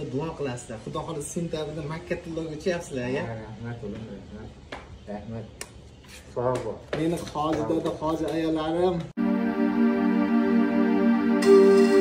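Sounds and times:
people speaking close to microphone: 6.4s - 9.1s.

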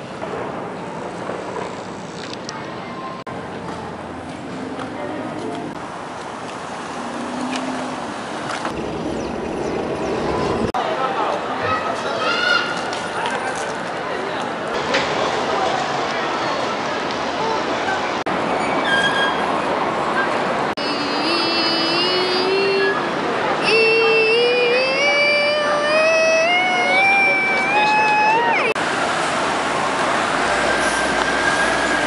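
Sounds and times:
city traffic noise: 0.0s - 32.0s
voice holding a rising note: 20.8s - 28.8s.

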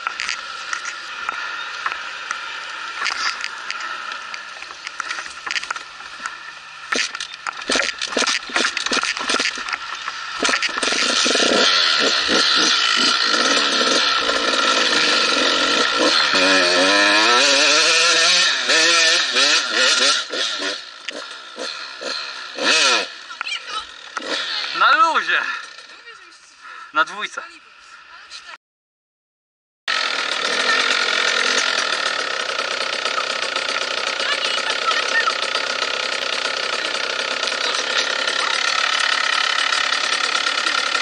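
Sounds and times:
motorcycle engine idling and revving: 0.0s - 28.6s, 29.9s - 41.0s.

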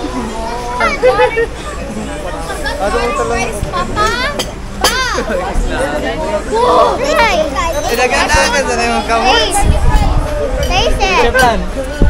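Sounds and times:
children and adults talking: 0.0s - 12.0s
restaurant chatter: 0.0s - 12.0s.

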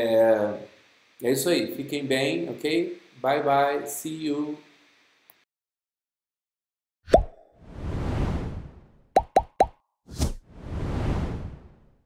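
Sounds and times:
whoosh: 7.6s - 9.0s, 10.1s - 12.0s.

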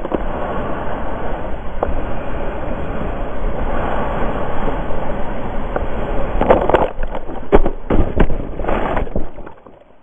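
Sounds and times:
rushing roar of breaking wave: 0.0s - 9.3s.

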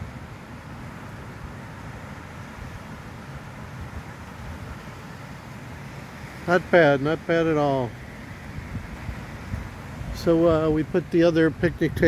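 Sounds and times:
sea surf: 0.0s - 12.0s
wind rumbling on microphone: 0.0s - 12.0s.

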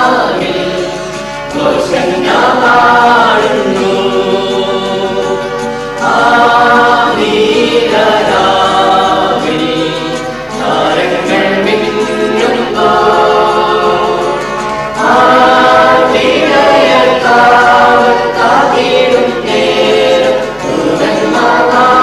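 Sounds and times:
church choir singing a carol: 0.0s - 22.0s.

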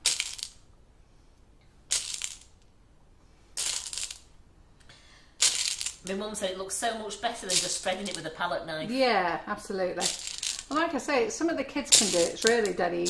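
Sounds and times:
sugar pearls rattling: 0.0s - 0.6s, 1.9s - 2.6s, 3.6s - 4.3s, 5.4s - 6.1s, 7.3s - 8.4s, 10.0s - 10.8s, 11.8s - 13.0s.

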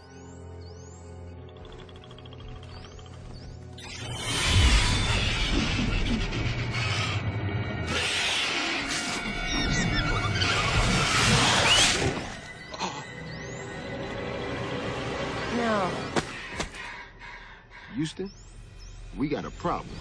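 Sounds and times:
dramatic music: 0.0s - 20.0s
bats screeching and fluttering: 1.4s - 13.7s
sharp bat squeaks: 3.8s - 7.1s, 9.2s - 12.2s.

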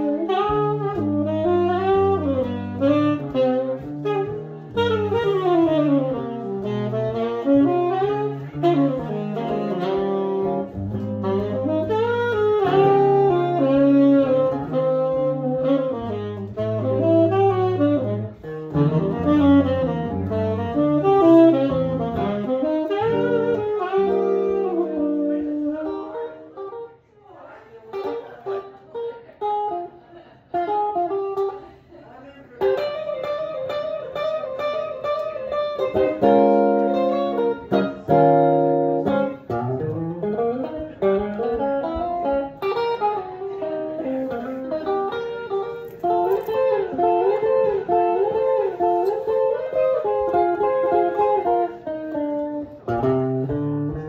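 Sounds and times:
electric guitar chords: 0.0s - 26.9s, 30.5s - 31.6s, 32.6s - 54.0s
tenor saxophone jazz solo: 0.0s - 27.1s, 27.8s - 31.8s, 32.5s - 54.0s.

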